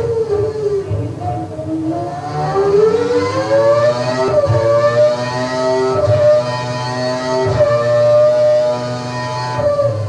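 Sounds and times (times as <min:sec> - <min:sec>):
racing engine revving: 0:00.0 - 0:10.0.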